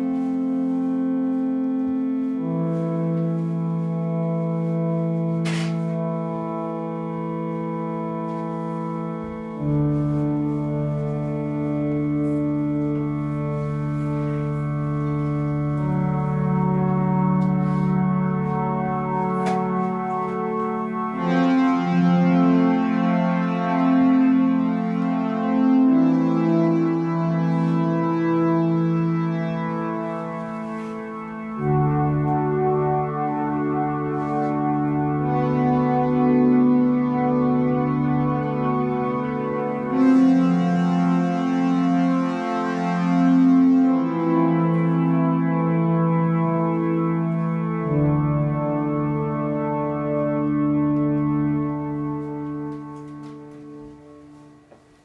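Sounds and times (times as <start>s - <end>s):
string ensemble playing chords: 0.0s - 55.0s.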